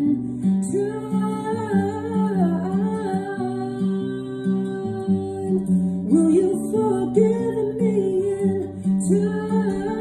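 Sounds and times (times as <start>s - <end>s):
acoustic guitar picking: 0.0s - 10.0s
woman singing wordless melody: 0.0s - 10.0s.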